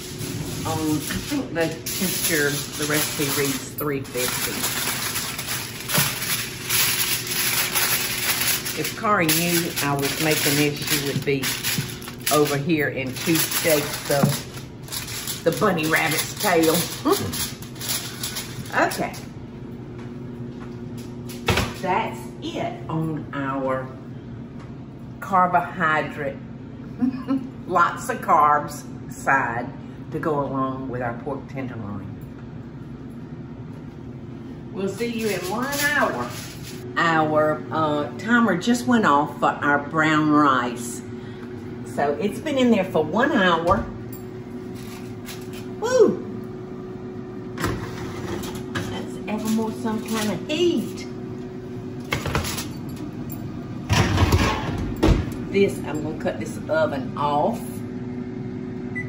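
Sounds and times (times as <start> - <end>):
low steady hum: 0.0 - 59.0
oven rack and baking dish clattering: 0.2 - 19.1, 53.8 - 56.2
woman's voice: 0.6 - 4.9, 8.7 - 14.5, 15.4 - 17.5, 18.7 - 19.3, 21.8 - 24.0, 25.2 - 32.2, 34.7 - 41.2, 41.8 - 44.0, 45.8 - 46.3, 48.8 - 51.2, 55.5 - 57.9.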